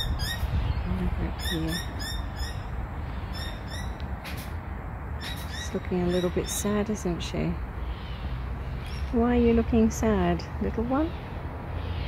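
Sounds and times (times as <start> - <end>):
birds chirping: 0.0 - 4.2, 5.2 - 12.0.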